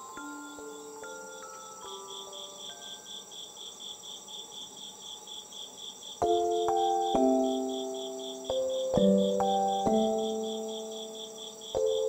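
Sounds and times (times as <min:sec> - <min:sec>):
soft slow held music notes: 0:00.0 - 0:03.7, 0:06.2 - 0:12.0
crickets chirping: 0:00.0 - 0:12.0.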